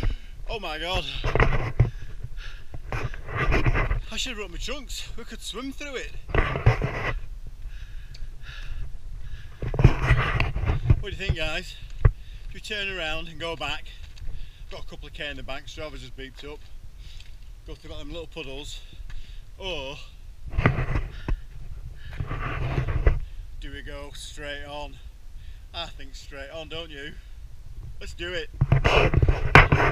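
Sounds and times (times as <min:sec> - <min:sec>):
wind rumbling on microphone: 0:00.0 - 0:04.8, 0:06.1 - 0:29.9
runner panting: 0:01.8 - 0:03.8, 0:07.0 - 0:12.6, 0:20.9 - 0:23.4
wind on microphone: 0:06.2 - 0:12.3.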